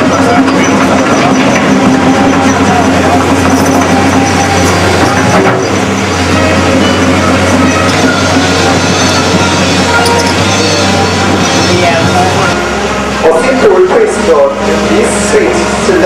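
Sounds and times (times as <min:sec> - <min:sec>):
excavator diesel engine running: 0:00.0 - 0:16.0.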